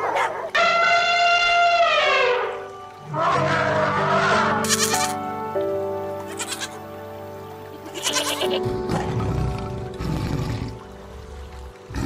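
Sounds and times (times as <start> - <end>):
background music with held tones: 0.0 - 12.0
goat bleating: 3.2 - 5.2, 6.2 - 6.8, 7.7 - 8.7.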